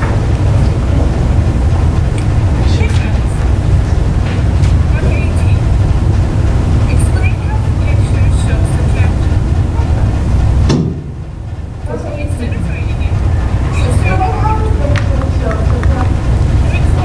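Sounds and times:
faint indistinct voices: 0.0s - 17.0s
loud low rumble: 0.0s - 17.0s.

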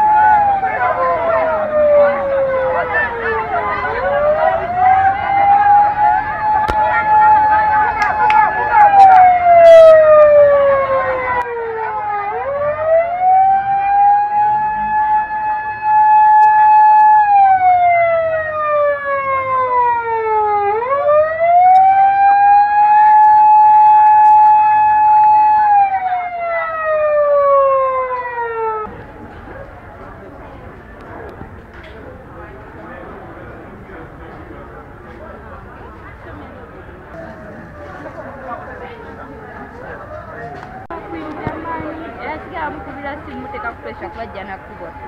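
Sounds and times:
ambulance siren wailing: 0.0s - 28.9s, 37.5s - 45.0s.

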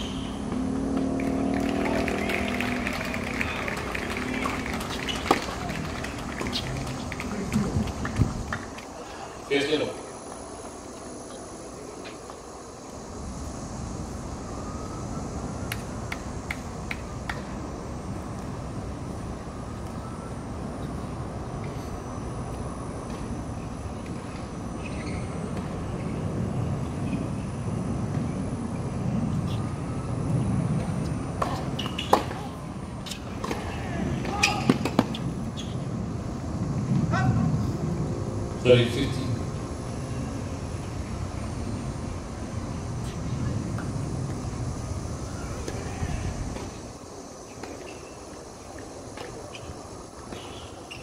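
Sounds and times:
low outdoor rumble: 0.0s - 47.6s.

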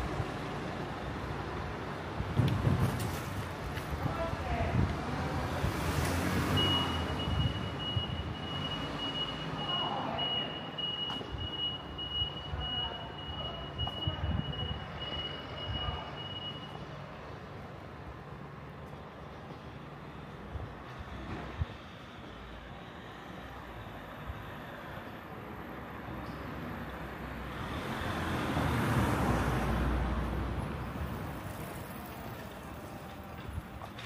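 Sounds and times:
street hum: 0.0s - 34.0s.

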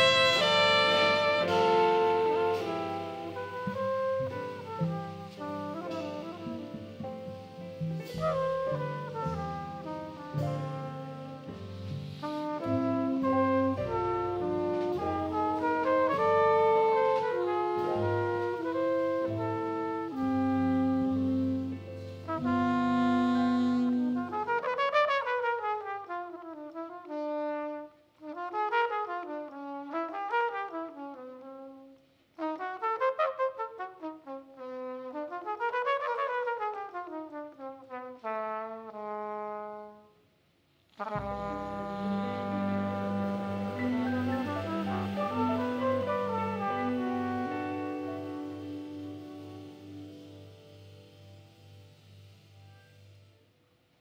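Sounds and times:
trumpet playing fast runs: 0.0s - 7.0s, 12.2s - 40.0s, 41.0s - 53.4s
jazz band playing: 0.0s - 31.8s, 32.4s - 39.8s, 40.9s - 53.4s.

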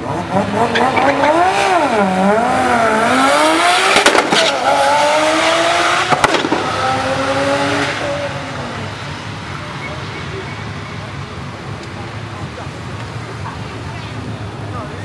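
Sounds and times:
car engine accelerating hard: 0.0s - 13.8s
exhaust cracks: 3.9s - 4.7s, 6.0s - 7.0s.

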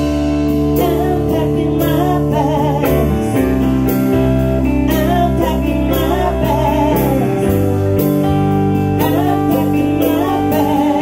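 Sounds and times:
electric guitar: 0.0s - 11.0s
live band playing: 0.0s - 11.0s
person singing: 0.0s - 11.0s.

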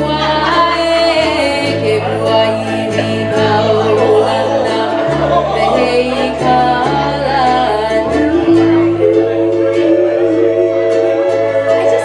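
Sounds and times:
low bass notes: 0.0s - 12.0s
strummed ukulele: 0.0s - 12.0s
woman singing: 0.0s - 12.0s.

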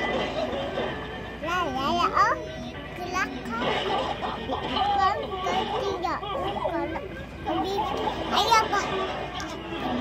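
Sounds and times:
child chattering playfully: 1.4s - 10.0s.

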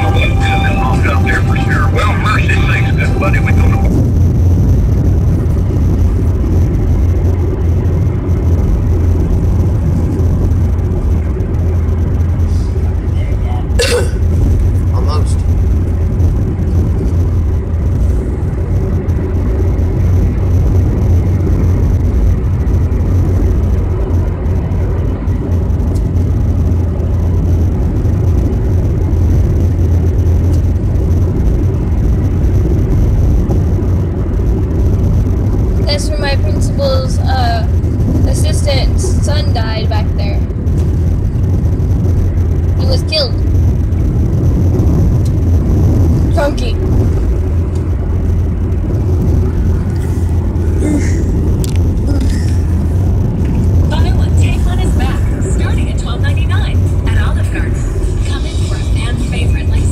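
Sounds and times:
road noise: 0.0s - 59.9s
vehicle engine drone: 0.0s - 59.9s.

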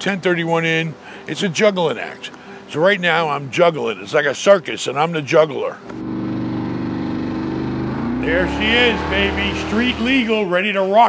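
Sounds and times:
car engine droning: 5.9s - 10.4s.

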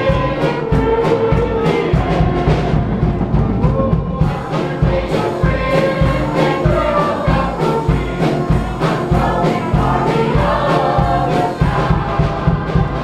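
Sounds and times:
choir singing gospel: 0.0s - 13.0s.

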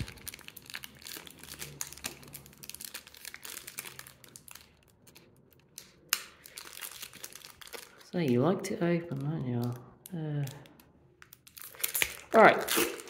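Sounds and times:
foil wrappers crinkling: 0.0s - 9.8s, 10.4s - 13.0s.

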